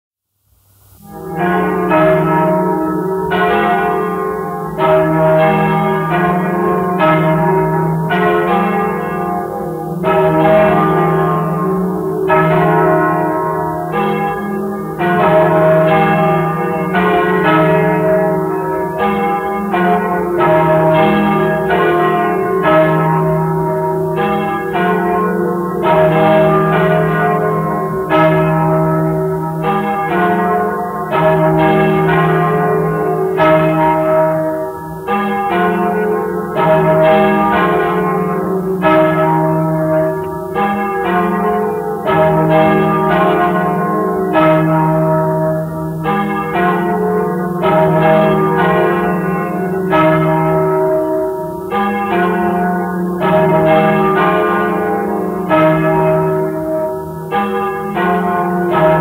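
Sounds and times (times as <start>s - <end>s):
church bells ringing: 0.9s - 59.0s.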